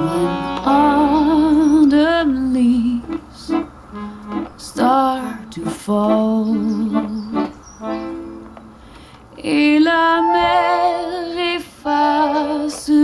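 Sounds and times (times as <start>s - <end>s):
slow song over a loudspeaker: 0.0s - 3.6s, 9.5s - 13.0s
held keyboard notes: 0.0s - 13.0s.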